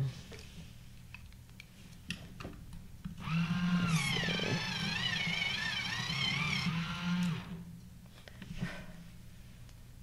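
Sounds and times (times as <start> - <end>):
electric pencil sharpener whining: 3.2 - 7.6.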